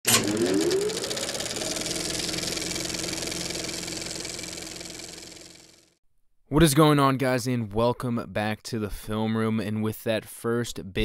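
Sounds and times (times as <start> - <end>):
film projector clatter and whir: 0.1 - 6.0.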